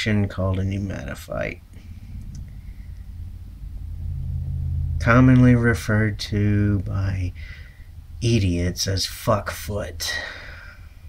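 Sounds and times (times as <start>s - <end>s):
low steady rumble: 0.0s - 11.0s.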